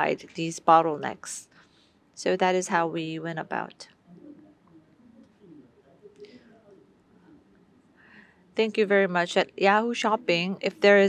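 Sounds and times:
faint man speaking: 4.1 - 7.8.

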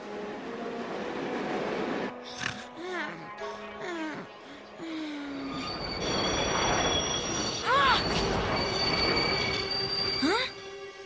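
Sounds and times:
underground train in tunnel: 0.0 - 11.0.

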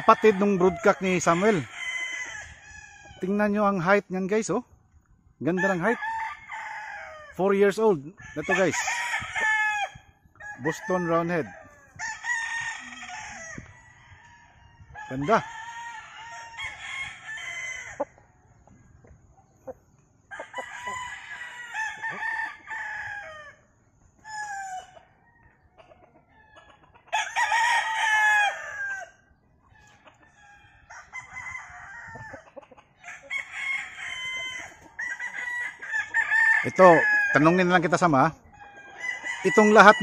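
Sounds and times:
roosters crowing: 0.0 - 4.6, 5.4 - 40.0.

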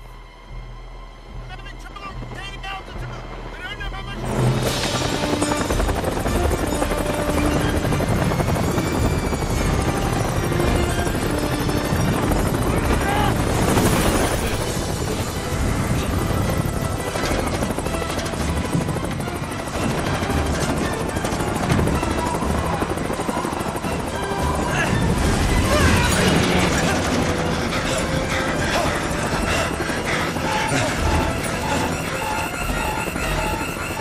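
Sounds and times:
helicopter rotor chopping: 3.3 - 34.0.

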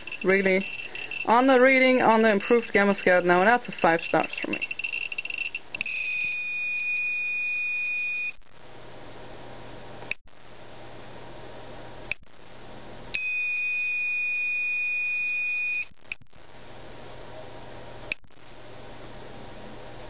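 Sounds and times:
geiger counter high-pitched tone: 0.0 - 8.4.

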